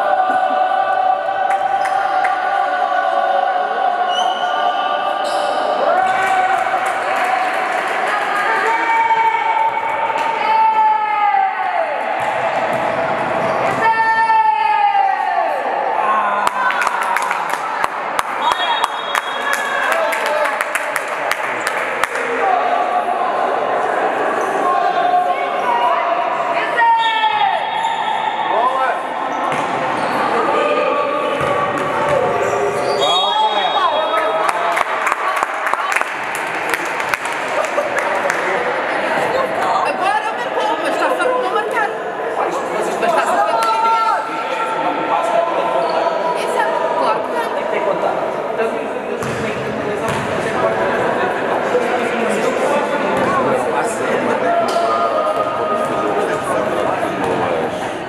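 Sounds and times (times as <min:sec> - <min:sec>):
basketball bouncing on floor: 0:49.2 - 0:49.4, 0:50.1 - 0:50.3.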